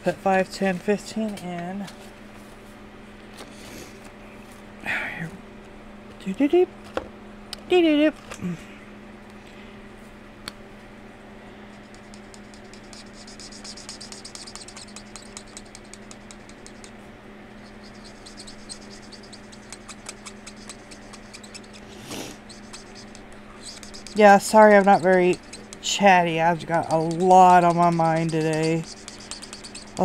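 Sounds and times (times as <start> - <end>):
faint low hum: 10.4 - 30.0
pen scratching on paper: 11.8 - 16.9, 17.6 - 30.0.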